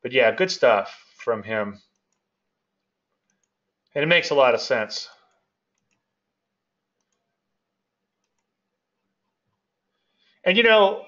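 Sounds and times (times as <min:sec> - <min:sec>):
computer mouse clicks: 0:01.8 - 0:03.6, 0:05.3 - 0:06.2, 0:07.0 - 0:07.3, 0:08.2 - 0:09.6.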